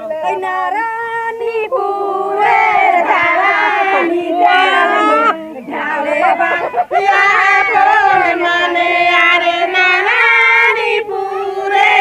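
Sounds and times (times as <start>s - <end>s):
women singing folk song: 0.0s - 12.0s.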